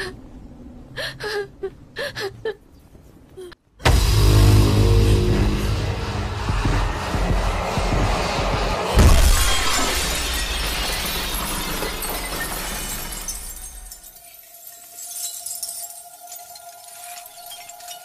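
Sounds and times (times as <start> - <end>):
low droning film score: 3.8 - 11.0
loud crash: 3.8 - 14.1
crackling breaking bits: 9.4 - 18.0.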